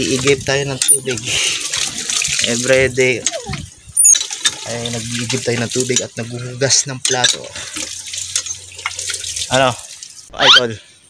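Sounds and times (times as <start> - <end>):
water splashing: 0.0 - 6.6, 7.4 - 10.7.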